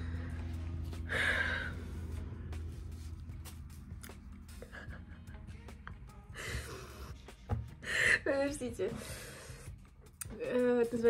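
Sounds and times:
woman laughing breathily: 4.5s - 5.4s.

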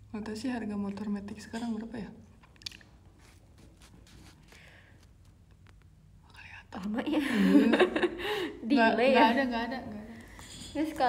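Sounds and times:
woman speaking: 8.6s - 11.0s.

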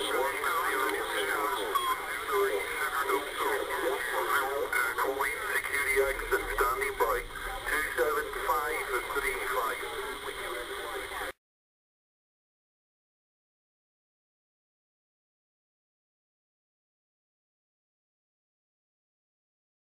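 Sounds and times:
hissy radio speech: 0.0s - 11.4s.

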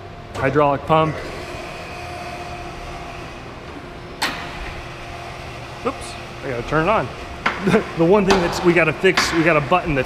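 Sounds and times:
hydraulic pump humming: 0.0s - 10.0s.

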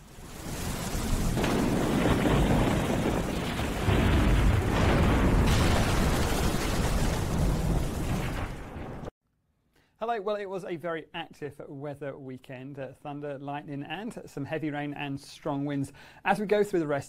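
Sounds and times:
heavy rain hissing: 0.0s - 9.1s
thunder crash: 0.0s - 9.1s
low thunder rumble: 0.1s - 9.1s.

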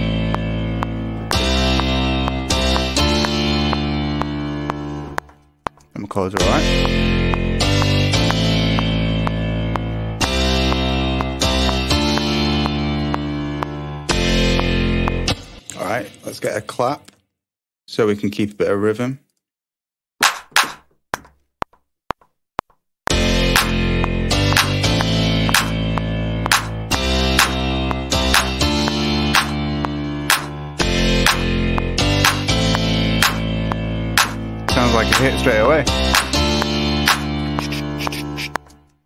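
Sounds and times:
sampled clap hits: 20.2s - 21.3s, 24.5s - 26.8s, 30.3s - 30.6s, 32.2s - 34.4s
house music with piano and bass: 23.1s - 38.6s.

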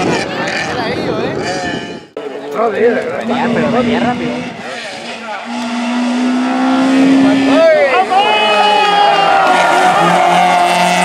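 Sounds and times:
rally car engine approaching: 2.2s - 11.0s.

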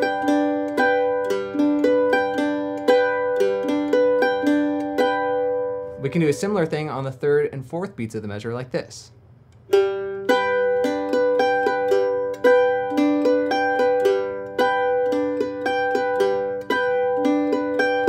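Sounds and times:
mandolin picking and strumming: 0.0s - 7.9s, 9.5s - 18.0s.

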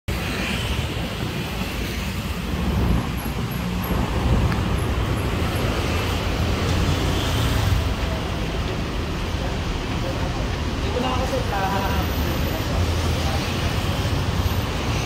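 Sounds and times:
city road traffic rumble: 0.1s - 15.0s.

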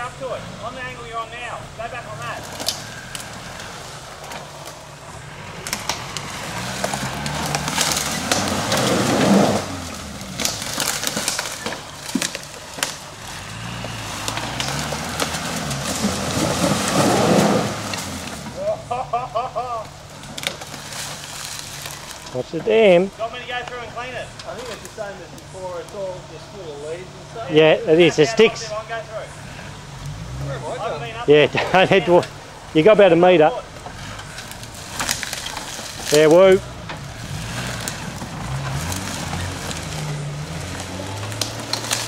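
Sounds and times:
tyres scrabbling on debris: 0.0s - 42.0s
vehicle engine revving: 0.0s - 42.0s.

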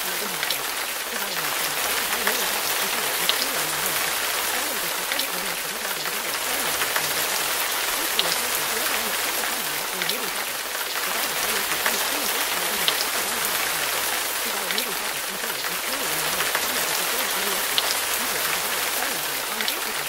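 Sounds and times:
faint drip-like ticks: 0.0s - 20.0s
low indistinct voice speaking: 0.0s - 20.0s
steady rain-like noise: 0.0s - 20.0s.

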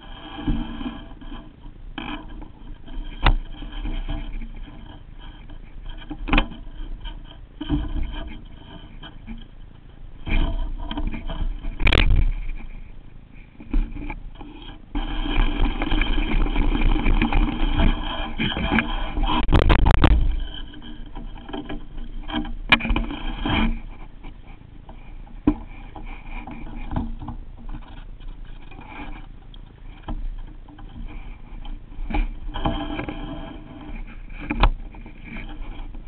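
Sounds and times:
rod and reel knocks and clicks: 0.0s - 36.0s.

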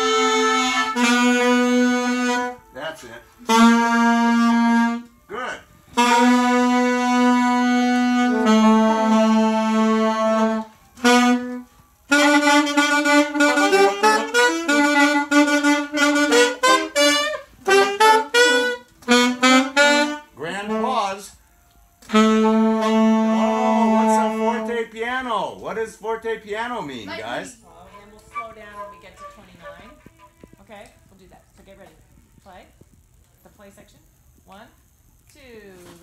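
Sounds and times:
alto saxophones playing in unison: 0.0s - 21.4s, 22.0s - 25.0s, 27.1s - 30.6s.

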